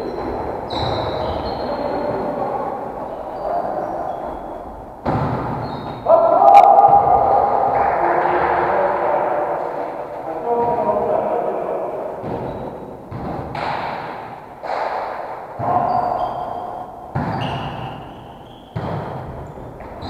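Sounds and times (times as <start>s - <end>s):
sneakers squeaking on wooden floor: 0.0s - 6.1s, 12.2s - 13.7s, 15.6s - 20.0s
players' voices: 0.0s - 13.7s, 14.6s - 19.9s
volleyball being hit: 12.2s - 15.9s, 17.1s - 20.0s.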